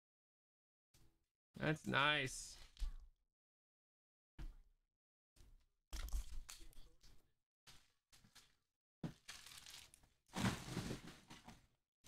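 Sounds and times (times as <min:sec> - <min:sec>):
paper mailer and bubble wrap rustling: 0:09.1 - 0:11.6.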